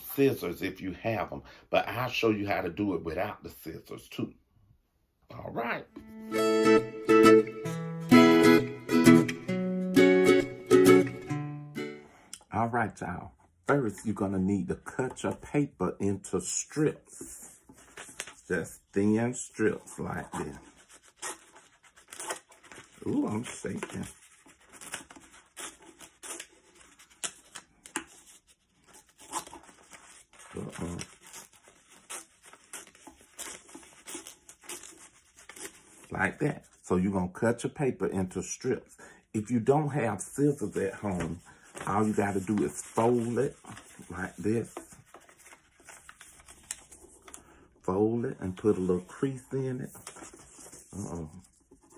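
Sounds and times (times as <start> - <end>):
paper folding and rustling: 16.8 - 36.8, 40.0 - 51.9
scissors cutting paper: 20.7 - 35.9.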